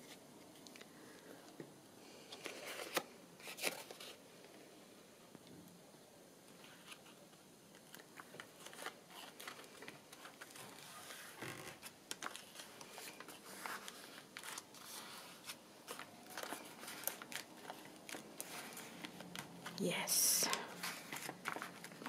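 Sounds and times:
paper rustling: 0:02.3 - 0:04.2, 0:06.6 - 0:19.8, 0:20.5 - 0:22.0.

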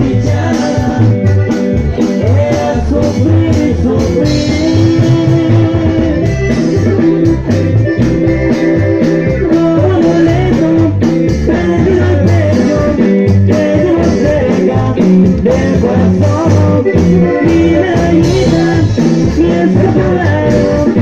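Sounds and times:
bass line: 0:00.0 - 0:21.0
guitar: 0:00.0 - 0:21.0
person singing: 0:00.0 - 0:21.0.

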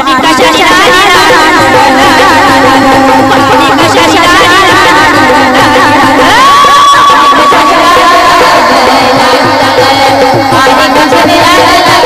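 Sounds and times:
devotional folk singing: 0:00.0 - 0:12.0
harmonium drone: 0:00.0 - 0:12.0.

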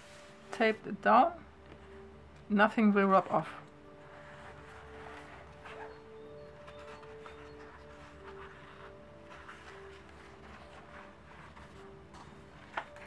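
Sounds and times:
soft background music: 0:00.0 - 0:13.0
paper pages rustling: 0:03.6 - 0:13.0.

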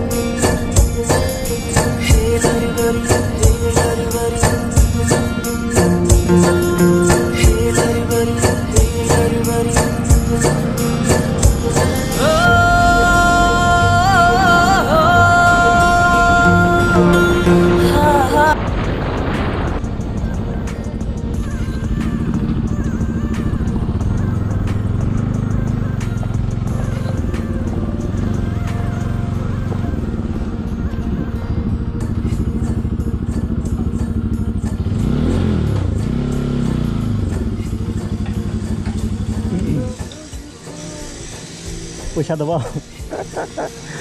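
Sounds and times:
motorcycle engine running: 0:00.0 - 0:44.0.

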